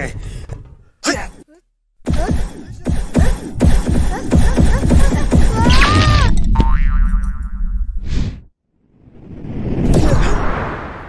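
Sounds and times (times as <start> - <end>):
springy boing effect: 6.6 - 7.9.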